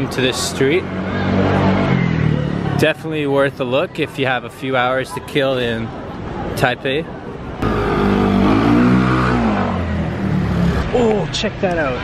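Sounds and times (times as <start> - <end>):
vehicle engine passing by: 0.0 - 3.4, 7.6 - 11.2.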